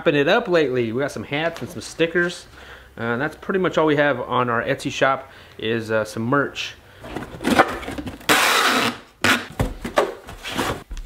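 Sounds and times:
packing tape tearing rip: 0:07.5 - 0:09.5.

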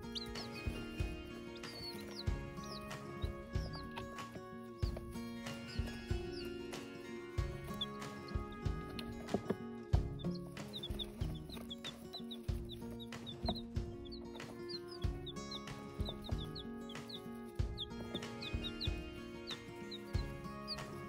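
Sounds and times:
background music with steady beat: 0:00.0 - 0:21.0
chicks peeping: 0:00.0 - 0:21.0.

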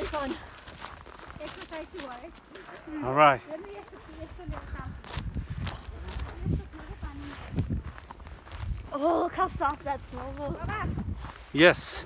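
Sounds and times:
footsteps in snow: 0:00.0 - 0:12.0.

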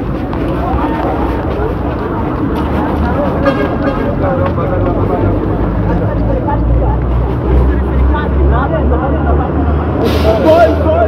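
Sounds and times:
people talking at once: 0:00.3 - 0:11.0.

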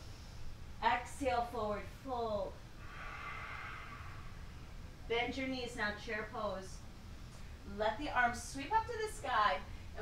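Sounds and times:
low background rumble: 0:00.0 - 0:10.0
soft breath out through mouth: 0:02.8 - 0:04.6.

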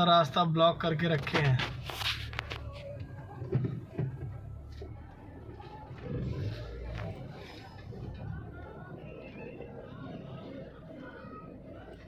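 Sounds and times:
distant people talking: 0:02.3 - 0:12.0.

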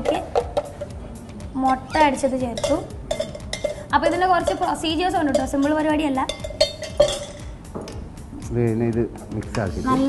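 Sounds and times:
metal spoon stirring in pot: 0:01.7 - 0:07.6.

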